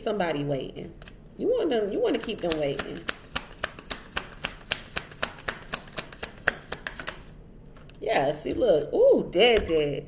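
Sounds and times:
cards being shuffled: 0:02.1 - 0:08.0.

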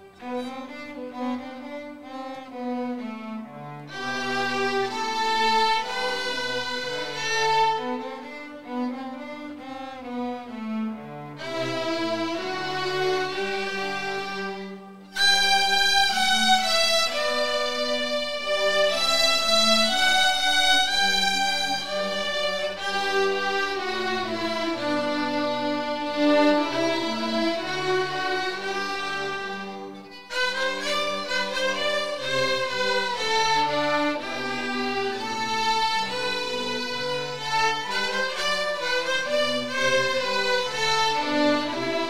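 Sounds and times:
string orchestra bowed notes: 0:00.0 - 0:42.0.

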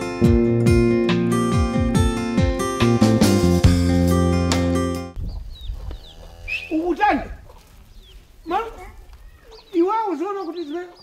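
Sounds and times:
small birds chirping: 0:05.1 - 0:11.0
loud rising and falling call: 0:06.0 - 0:06.9.

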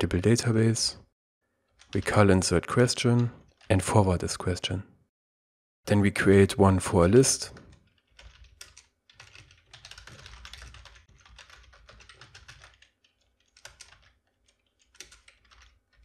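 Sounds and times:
computer keyboard typing: 0:01.7 - 0:03.7, 0:07.6 - 0:16.0.

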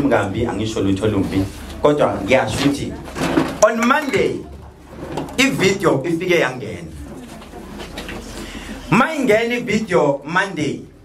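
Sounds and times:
man speaking into a microphone: 0:00.0 - 0:03.0, 0:03.6 - 0:04.5, 0:05.4 - 0:07.0, 0:08.9 - 0:11.0.

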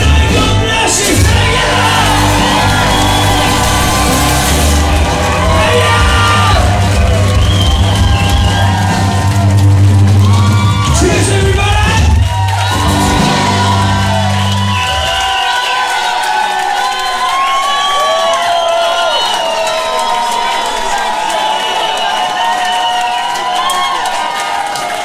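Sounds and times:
acoustic rock band playing: 0:00.0 - 0:15.5
crowd cheering and whooping: 0:00.0 - 0:25.0.

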